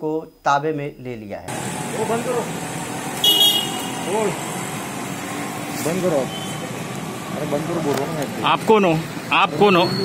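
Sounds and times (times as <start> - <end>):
street traffic: 1.5 - 10.0
short high vehicle horn toot: 3.2 - 4.3.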